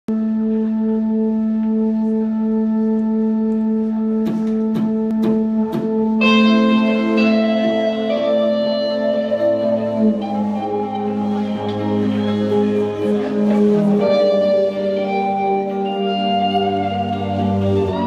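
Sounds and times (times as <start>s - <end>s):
live band droning intro: 0.1s - 18.0s.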